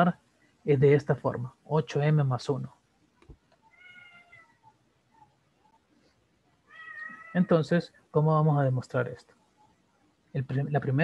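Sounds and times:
faint animal calls: 3.6s - 5.9s, 6.6s - 7.7s.

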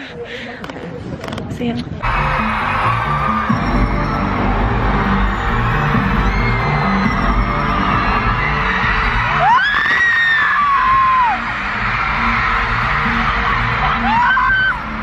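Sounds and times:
live concert music with heavy bass: 2.0s - 15.0s.

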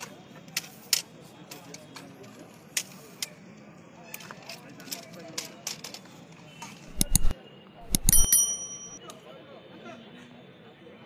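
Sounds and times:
high metallic ringing: 6.9s - 7.3s, 7.9s - 9.0s.

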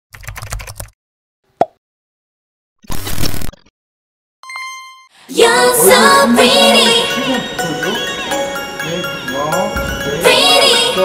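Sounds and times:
keyboard typing clicks: 0.2s - 0.9s.

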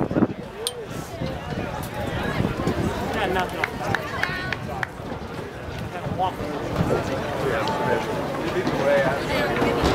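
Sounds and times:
people talking and calling out: 0.0s - 9.9s.

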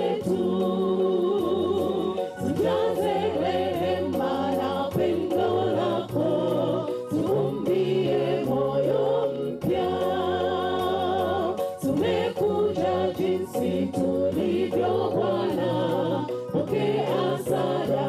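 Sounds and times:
woman singing into microphone: 0.0s - 7.8s
congregation singing gospel song: 0.0s - 18.0s.

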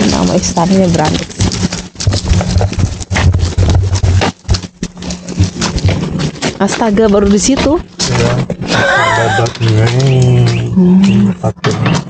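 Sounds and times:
pushchair wheels crunching on gravel: 0.0s - 10.7s
footsteps on gravel: 0.0s - 12.0s.

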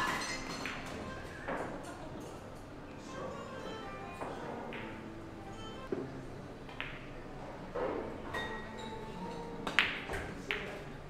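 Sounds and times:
cue striking ball: 4.4s - 6.0s, 6.7s - 7.2s, 9.4s - 10.7s
pool balls clicking: 4.4s - 6.0s, 9.4s - 10.9s.

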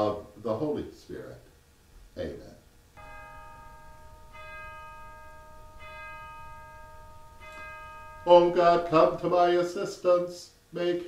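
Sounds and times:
bell ringing: 3.0s - 9.8s.

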